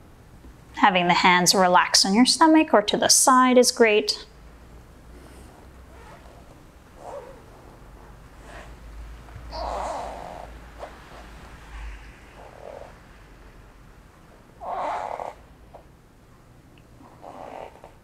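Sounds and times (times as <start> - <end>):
faint low hum: 0.0 - 18.0
soft breathing: 5.0 - 13.7.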